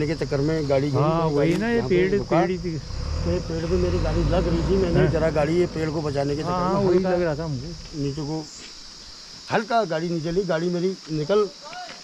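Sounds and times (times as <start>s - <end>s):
man talking: 0.0s - 8.6s
insects droning: 0.0s - 12.0s.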